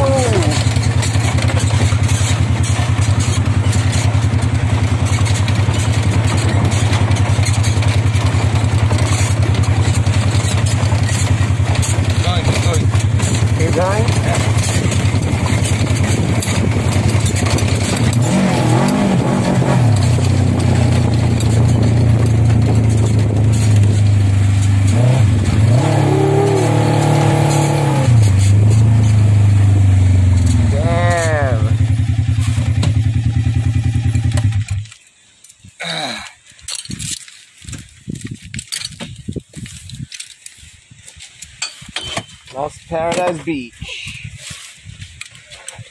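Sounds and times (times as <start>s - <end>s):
atv engine revving: 0.0s - 35.0s.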